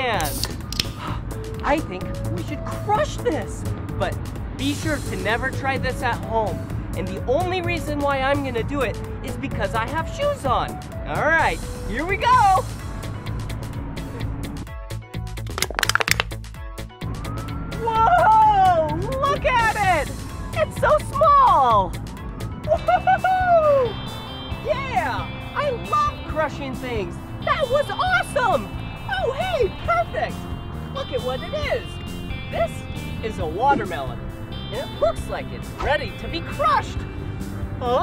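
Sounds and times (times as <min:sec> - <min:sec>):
background music: 0:00.0 - 0:38.0
can crushed underfoot: 0:15.5 - 0:16.3.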